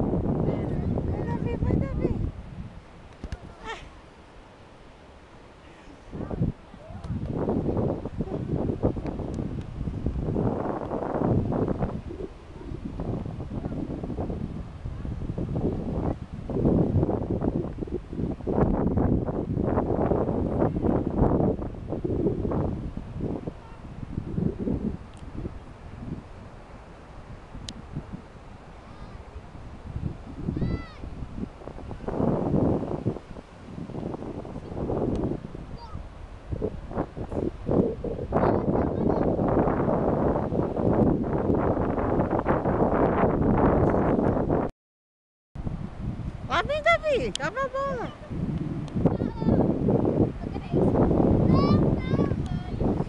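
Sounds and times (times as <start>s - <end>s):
wind rumbling on microphone: 0.0s - 44.7s, 45.6s - 53.0s.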